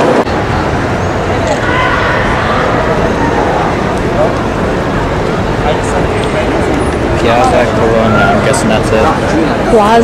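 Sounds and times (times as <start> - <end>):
crowd chatter: 0.0 - 10.0
street traffic rumble: 0.0 - 10.0
people talking: 1.2 - 10.0.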